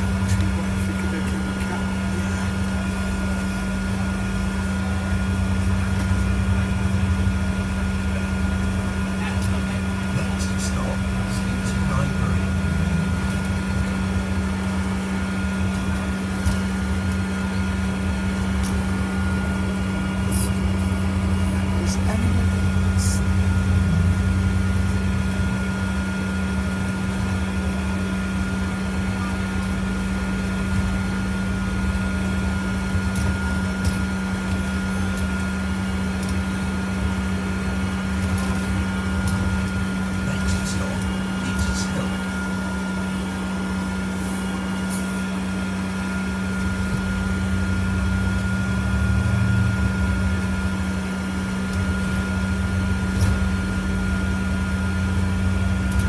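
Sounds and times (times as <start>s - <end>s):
bus drivetrain and road rumble: 0.0s - 56.0s
thin steady whine: 0.0s - 56.0s.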